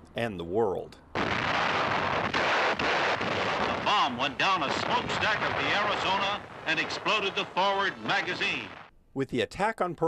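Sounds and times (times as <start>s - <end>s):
explosions: 1.2s - 8.9s
gunfire: 1.2s - 8.9s.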